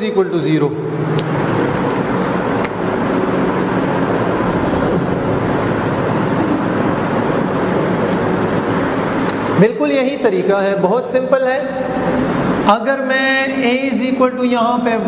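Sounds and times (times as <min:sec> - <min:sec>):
speech: 0:00.0 - 0:00.8, 0:09.6 - 0:11.8, 0:12.7 - 0:15.0
steady rushing noise: 0:00.6 - 0:12.7.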